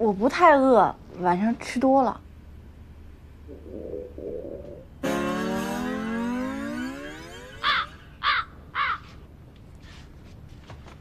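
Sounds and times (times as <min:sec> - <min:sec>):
long falling tone: 0:05.0 - 0:08.2
crow cawing: 0:07.6 - 0:09.2.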